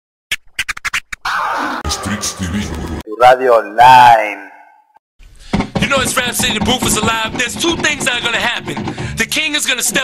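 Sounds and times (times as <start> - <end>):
turntable scratching: 0.3 - 3.0.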